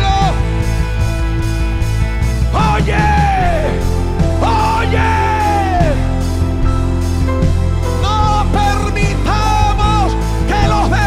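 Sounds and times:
man shouting into a microphone: 0:00.0 - 0:00.5, 0:02.5 - 0:03.8, 0:04.4 - 0:06.2, 0:08.0 - 0:11.0
church band music: 0:00.0 - 0:11.0.

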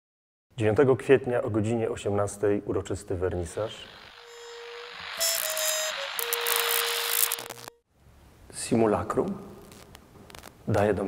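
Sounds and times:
static hiss: 0:03.3 - 0:07.8, 0:09.6 - 0:10.6
steady electronic tone: 0:03.3 - 0:07.8.

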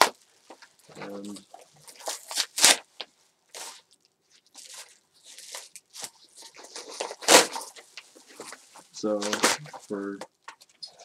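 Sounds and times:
packaging being torn open: 0:00.0 - 0:02.9, 0:03.5 - 0:07.8, 0:09.1 - 0:11.0.

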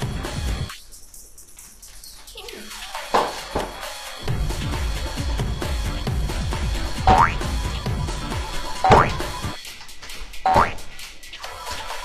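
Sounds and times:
background music: 0:00.0 - 0:01.0, 0:02.4 - 0:12.0
cartoon boing spring effect: 0:07.1 - 0:07.4, 0:08.8 - 0:09.2, 0:10.5 - 0:10.8.

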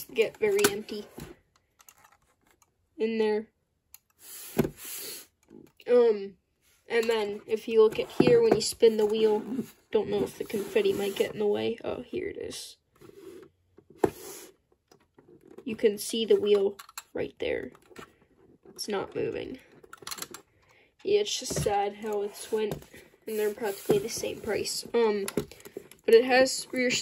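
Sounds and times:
toy car handling noises: 0:00.4 - 0:02.7, 0:14.1 - 0:18.9, 0:19.7 - 0:20.5.

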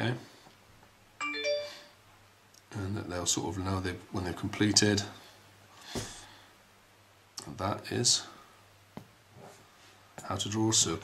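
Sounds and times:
rising three-note chime: 0:01.2 - 0:01.9.

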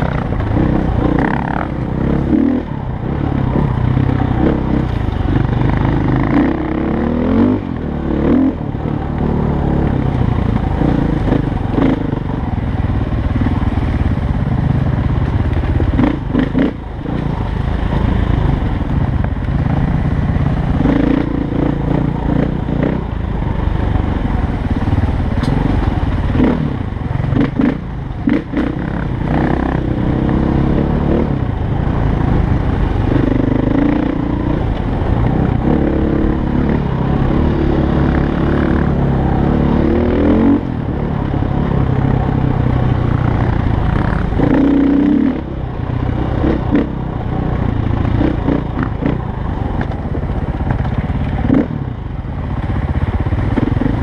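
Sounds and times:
dirt bike engine revving: 0:00.0 - 0:12.4, 0:15.8 - 0:18.6, 0:20.3 - 0:45.6, 0:51.3 - 0:51.8.

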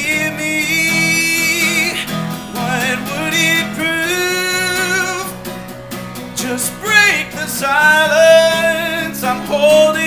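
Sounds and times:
man singing: 0:00.0 - 0:05.5, 0:06.3 - 0:10.0
acoustic guitar: 0:00.0 - 0:10.0.

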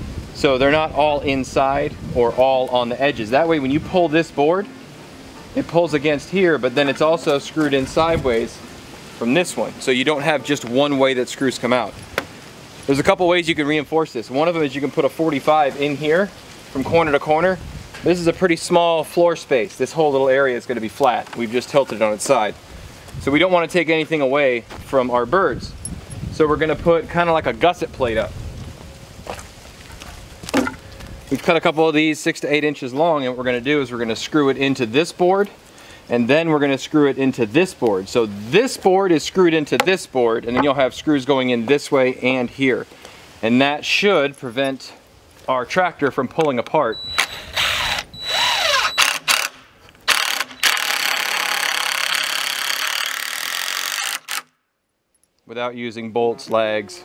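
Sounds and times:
cordless drill driving screws into wood: 0:47.2 - 0:54.6.

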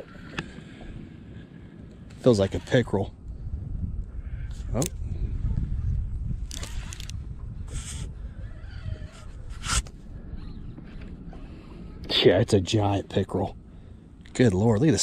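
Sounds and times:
wind on microphone: 0:00.0 - 0:12.1.

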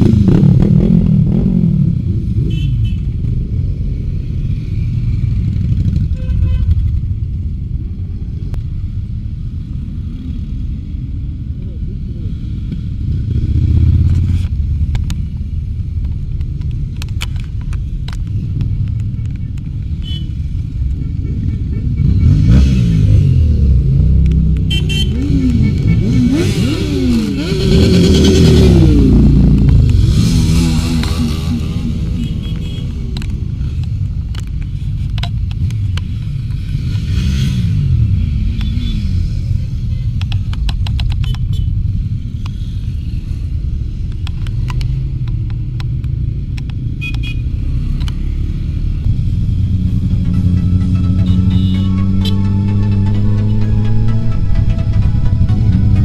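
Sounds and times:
motorcycles passing: 0:00.0 - 0:56.0.

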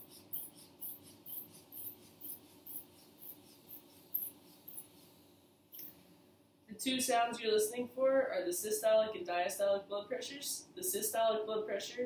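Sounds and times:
hand bulb pumping air hiss: 0:00.0 - 0:06.0.

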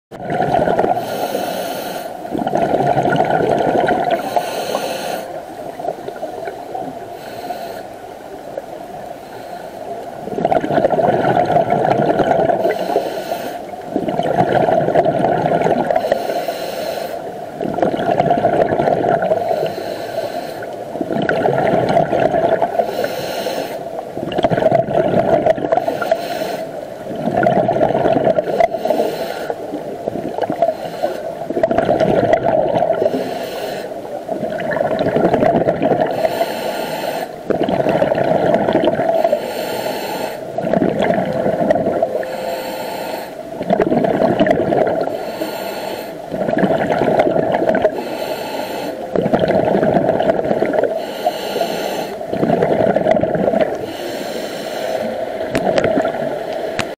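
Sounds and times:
bubbling on exhale: 0:00.1 - 0:06.6, 0:10.2 - 0:16.2, 0:17.1 - 0:19.9, 0:20.6 - 0:23.1, 0:24.2 - 0:56.9
regulator hiss on inhale: 0:00.9 - 0:02.3, 0:04.1 - 0:05.4, 0:06.1 - 0:08.3, 0:09.2 - 0:10.1, 0:12.5 - 0:13.8, 0:15.9 - 0:17.3, 0:19.2 - 0:20.9, 0:22.8 - 0:23.9, 0:25.7 - 0:26.8, 0:28.4 - 0:31.6, 0:33.0 - 0:34.2, 0:36.1 - 0:37.6, 0:39.1 - 0:40.6, 0:42.1 - 0:43.5, 0:45.0 - 0:46.4, 0:47.9 - 0:49.2, 0:50.7 - 0:52.3, 0:53.7 - 0:55.4.

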